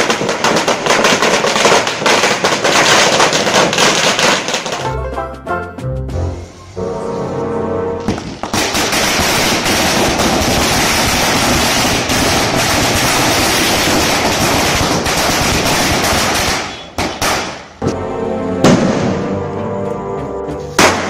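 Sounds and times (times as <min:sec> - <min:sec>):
firecrackers banging: 0:00.0 - 0:05.0, 0:08.0 - 0:18.0, 0:18.6 - 0:19.6, 0:20.6 - 0:21.0.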